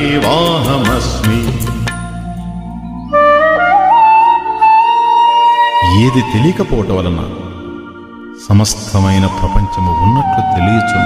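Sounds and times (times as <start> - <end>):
person singing devotional verse: 0.0 - 2.1.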